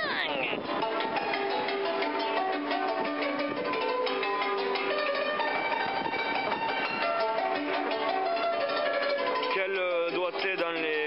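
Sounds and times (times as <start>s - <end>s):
fast stringed instrument melody: 0.2s - 11.0s.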